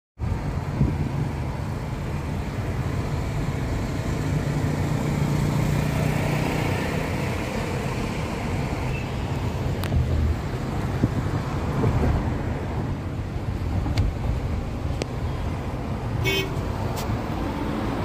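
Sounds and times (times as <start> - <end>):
car tyre and engine rumble: 0.2 - 18.0.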